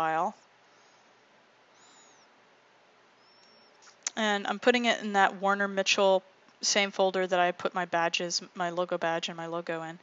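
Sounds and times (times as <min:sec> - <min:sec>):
faint background hiss: 0:00.0 - 0:10.0
faint high-pitched chirps: 0:01.7 - 0:02.4, 0:03.1 - 0:04.1.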